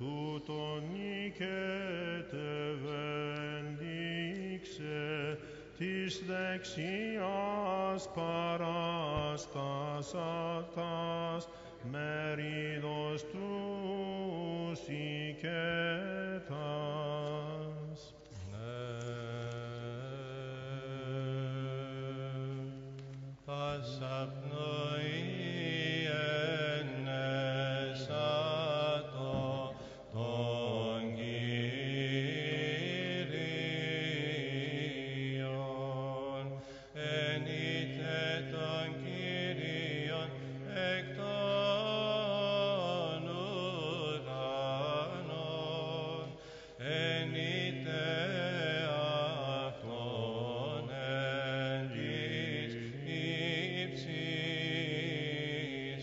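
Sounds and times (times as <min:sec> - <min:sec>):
slow melismatic chant: 0:00.0 - 0:56.0
held vocal drone: 0:23.5 - 0:56.0.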